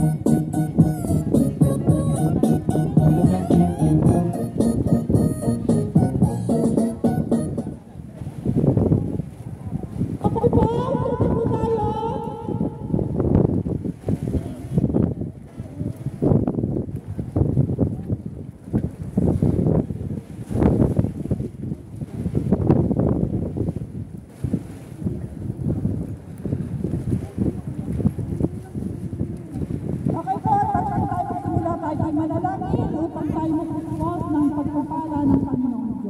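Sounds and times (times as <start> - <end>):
wind buffeting microphone: 0.0 - 36.0.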